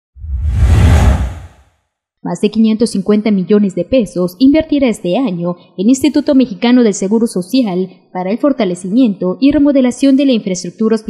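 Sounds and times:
deep rumble: 0:00.2 - 0:01.6
whoosh sound effect: 0:00.2 - 0:01.6.

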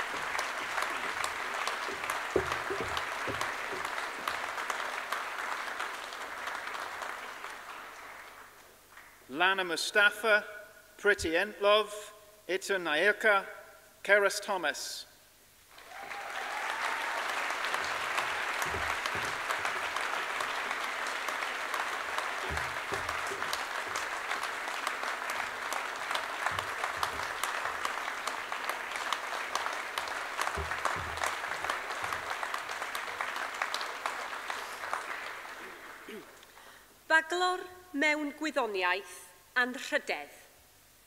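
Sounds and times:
large audience applauding: 0:00.0 - 0:09.2, 0:15.7 - 0:36.6.

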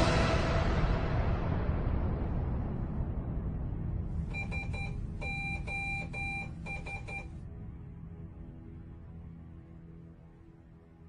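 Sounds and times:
electronic alarm beeping: 0:04.3 - 0:07.3.

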